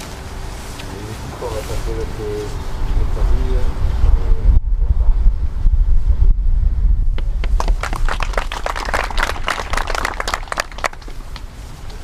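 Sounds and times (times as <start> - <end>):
wind rumbling on microphone: 0.0 - 12.0
people clapping: 7.2 - 11.5.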